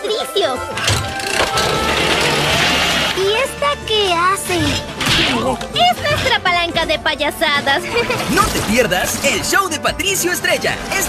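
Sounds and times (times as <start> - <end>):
background music: 0.0 - 11.0
chainsaws running: 1.0 - 3.3.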